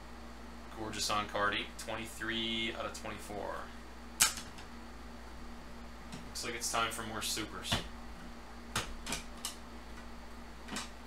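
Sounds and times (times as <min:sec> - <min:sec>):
low steady hum: 0:00.0 - 0:11.0
sharp plastic clack: 0:04.2 - 0:04.6.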